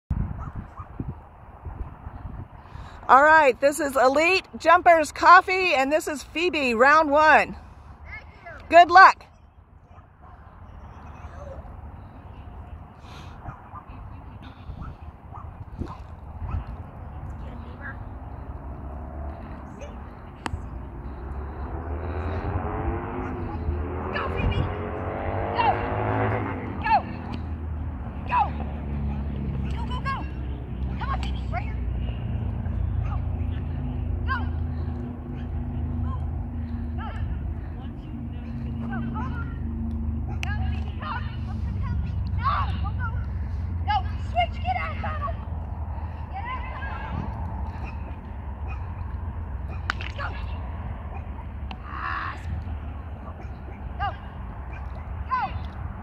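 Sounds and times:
wind buffeting microphone: 0.1 - 3.1, 11.9 - 26.8, 45.2 - 49.8
vehicle engine running: 15.6 - 51.8.

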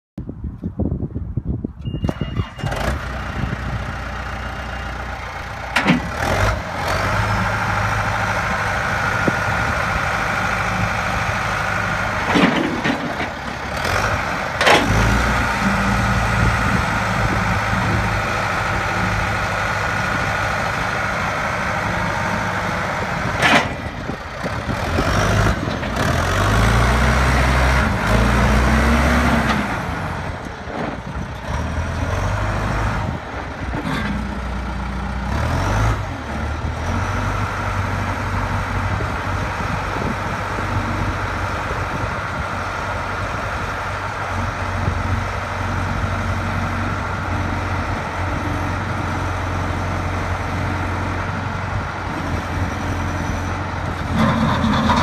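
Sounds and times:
loader engine running under load: 1.0 - 55.0.

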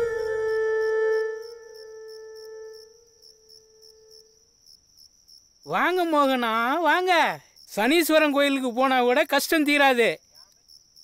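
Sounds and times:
low held musical note: 0.0 - 3.0
crickets chirping: 0.0 - 11.0.

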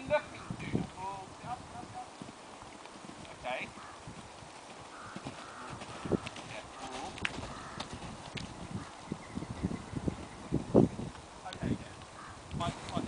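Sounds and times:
horse hooves thudding at canter: 0.7 - 9.2.

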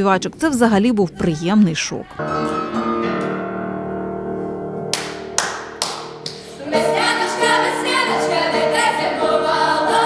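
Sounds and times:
sharp hand claps: 4.9 - 6.5.

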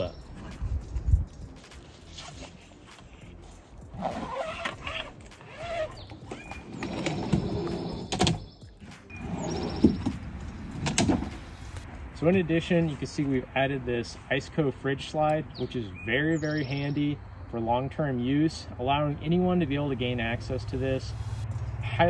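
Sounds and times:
drawer slide rolling and scraping: 6.4 - 8.4, 9.1 - 11.5.

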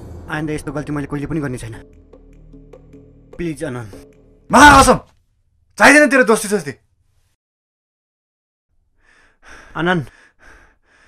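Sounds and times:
man calling out a word: 4.5 - 5.1
man breathing hard: 9.0 - 11.0.

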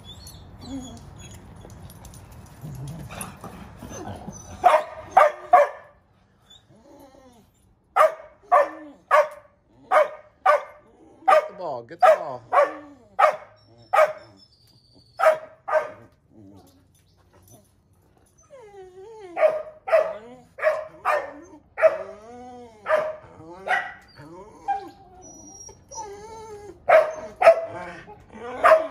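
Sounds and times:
dog whining and yelping: 0.0 - 7.8, 12.5 - 28.9
dog barking: 4.6 - 5.9, 8.0 - 14.2, 15.2 - 16.1, 19.4 - 22.1, 22.9 - 24.0, 26.9 - 27.8, 28.6 - 28.9.

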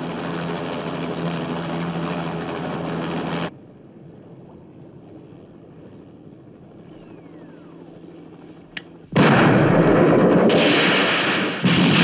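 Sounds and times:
high electronic whine: 6.8 - 8.8.

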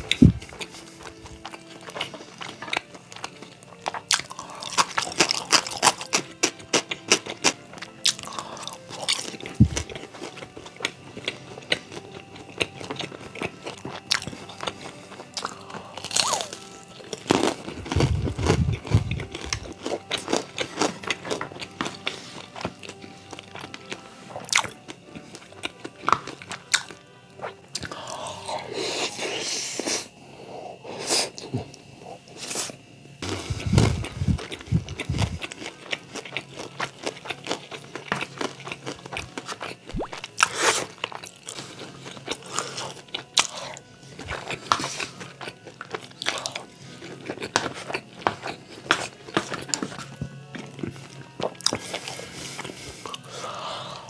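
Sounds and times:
crunchy chewing: 0.0 - 54.0
soft background music: 0.0 - 54.0.

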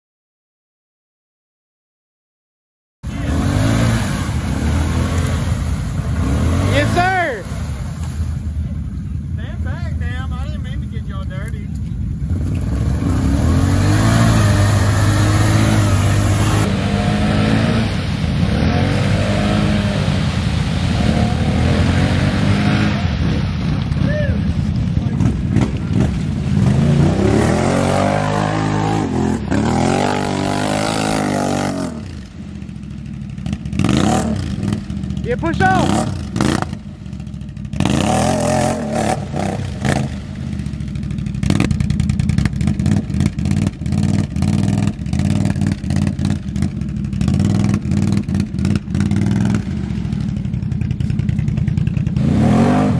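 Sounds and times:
atv engine revving: 3.1 - 52.9.

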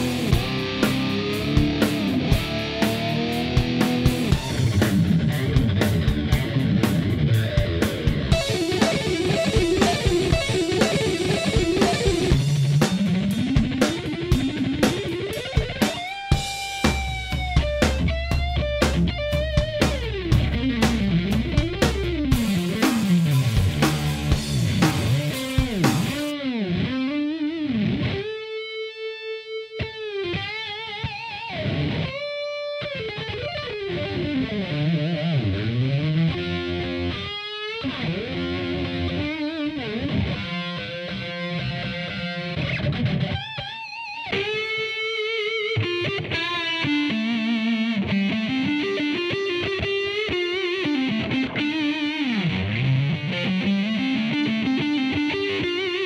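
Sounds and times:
drums: 0.0 - 26.4, 38.8 - 56.0
electric guitar: 0.0 - 56.0.

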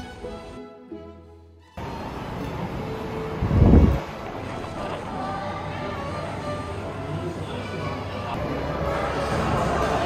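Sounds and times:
steady background hiss: 1.8 - 9.4
low buffeting rumble on microphone: 2.5 - 5.6.

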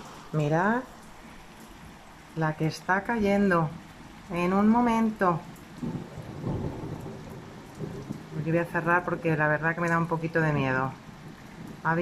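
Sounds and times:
heavy rain on tiles: 0.0 - 12.0
low rumble of thunder: 3.6 - 12.0.

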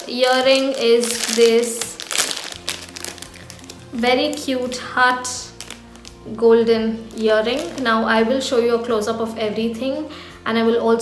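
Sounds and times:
plastic pouch crinkling: 0.0 - 8.6
soft background music: 0.0 - 11.0.

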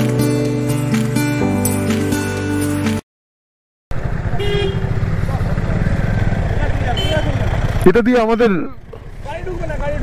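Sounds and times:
motorcycle engine rumble: 3.9 - 10.0
vehicle horn toot: 4.2 - 5.0, 6.9 - 7.4.

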